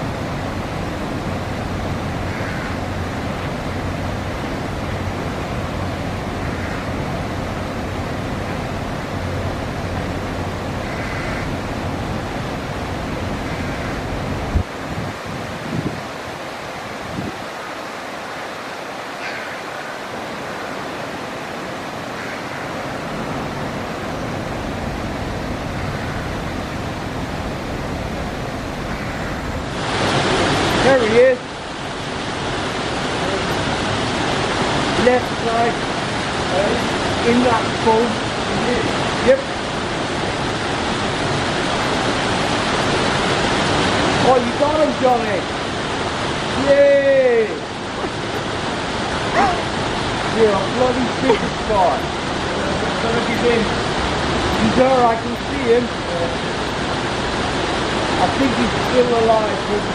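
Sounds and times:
churning water: 0.0 - 59.9
water rushing in canal lock: 0.0 - 59.9.

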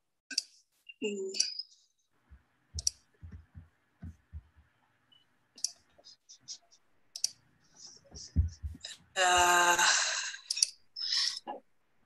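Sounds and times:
keyboard and mouse clicks: 2.8 - 3.5, 5.6 - 6.0, 7.1 - 7.4.

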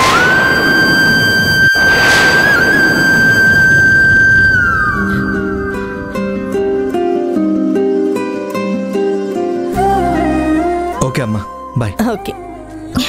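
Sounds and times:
high held tone: 0.0 - 6.8
dense rushing swell: 0.0 - 6.9
plucked string notes: 5.0 - 11.2.

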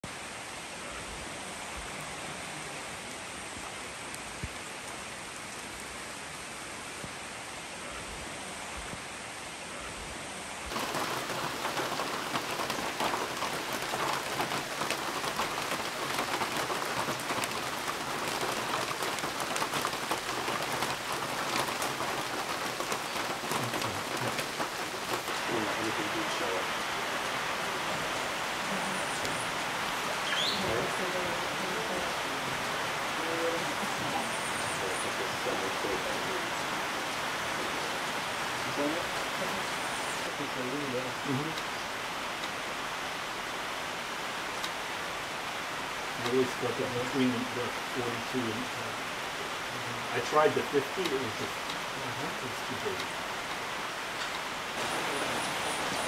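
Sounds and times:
steady rain falling: 0.0 - 56.0.

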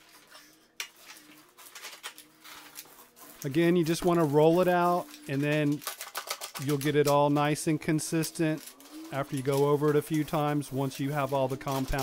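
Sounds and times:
paint roller sticky crackle: 0.0 - 12.0.

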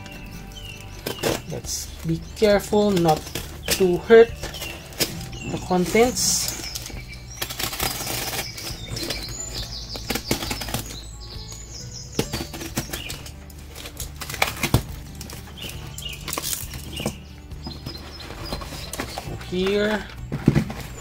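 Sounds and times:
cardboard tearing and rustling: 0.0 - 11.0, 12.2 - 21.0
utility knife slitting cardboard: 2.2 - 11.0.

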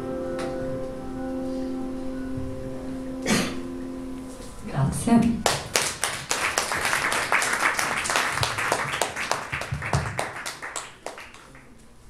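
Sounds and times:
audience applauding: 5.4 - 11.8.

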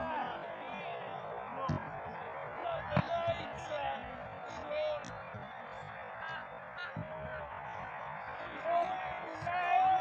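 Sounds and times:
distant shouts of footballers: 6.2 - 10.0.

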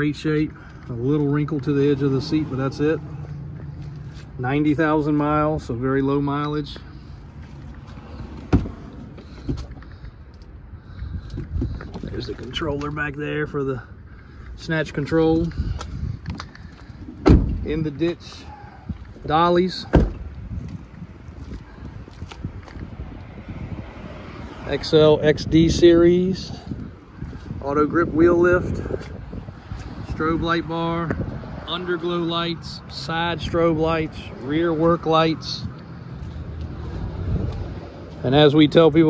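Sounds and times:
wind buffeting microphone: 10.5 - 13.2, 15.2 - 31.7, 35.0 - 38.0.

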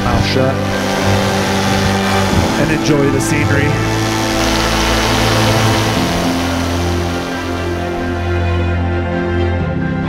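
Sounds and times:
paramotor engine droning: 0.0 - 9.8
background music: 0.0 - 10.0.

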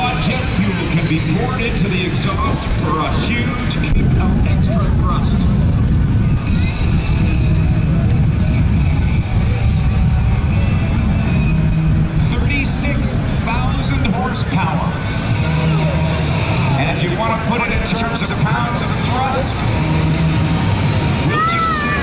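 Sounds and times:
faint voices: 0.0 - 22.0
jet engines roaring: 0.0 - 22.0.

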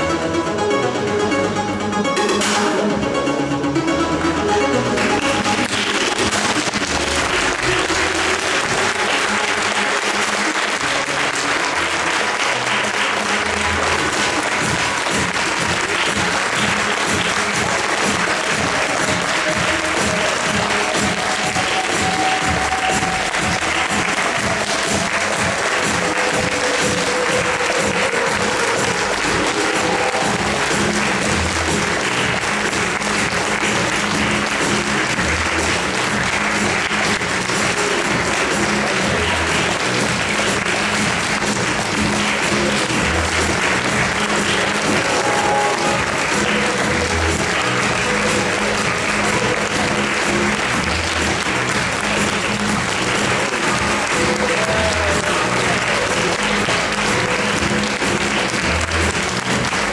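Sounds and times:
recorded music with steady beat: 0.0 - 59.9
audience applauding: 5.0 - 59.9.

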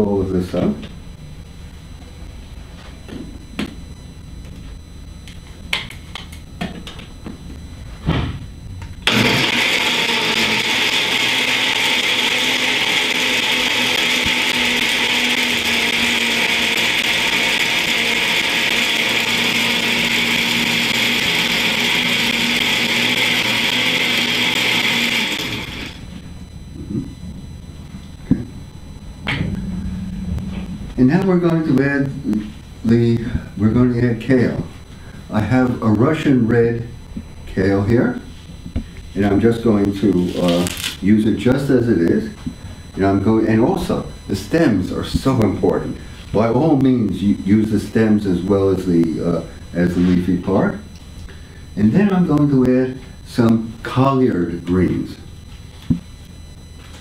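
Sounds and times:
blender running: 9.0 - 26.2.

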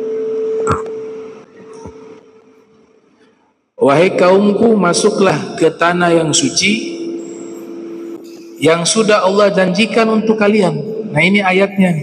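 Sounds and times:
loudspeaker ringing tone: 3.8 - 12.0.

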